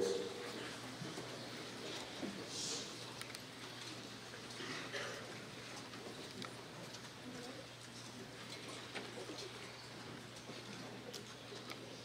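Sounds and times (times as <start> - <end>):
low murmur of voices: 0.0 - 12.0
steady low hum: 0.0 - 12.0.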